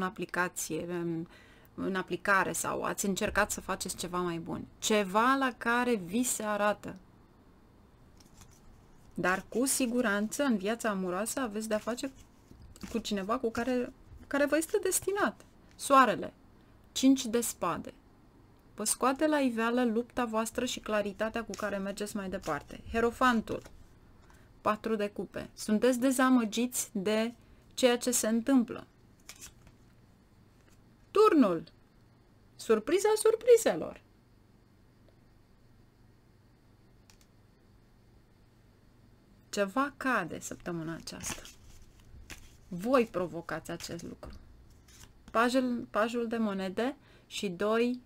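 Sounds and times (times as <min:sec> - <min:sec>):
card sliding off a deck: 0:41.2 - 0:42.7.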